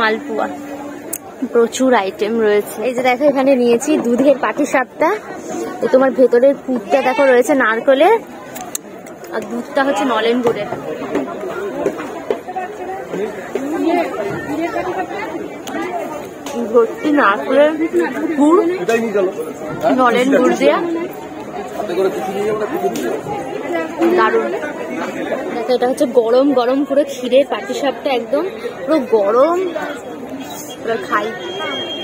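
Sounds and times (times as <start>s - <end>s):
crowd chatter: 0.0s - 32.0s.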